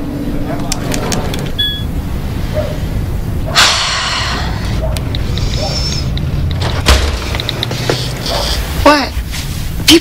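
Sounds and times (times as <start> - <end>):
steady low rumble: 0.0 - 9.9
short electronic beep: 1.6 - 1.9.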